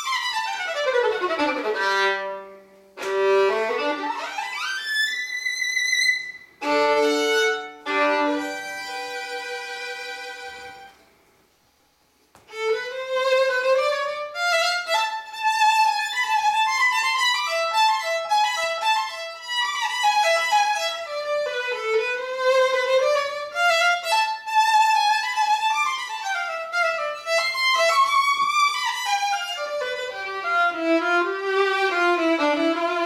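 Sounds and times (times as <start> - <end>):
solo violin played with bow: 0.0 - 11.1, 12.4 - 33.0.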